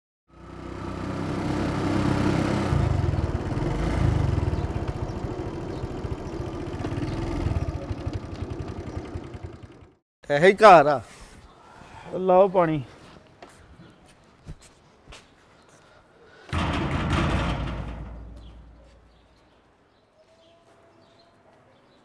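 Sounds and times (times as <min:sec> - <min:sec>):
small motorcycle engine running: 0:00.3 - 0:10.0.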